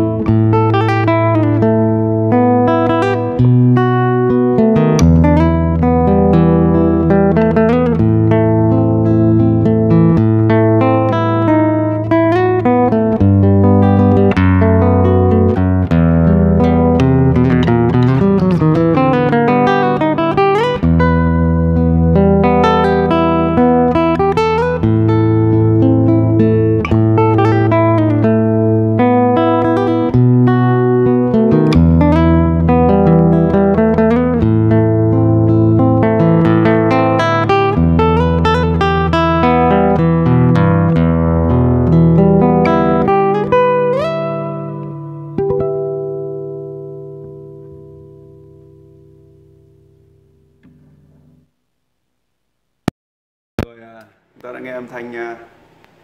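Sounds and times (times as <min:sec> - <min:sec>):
fingerstyle nylon-string guitar: 0:00.0 - 0:51.5.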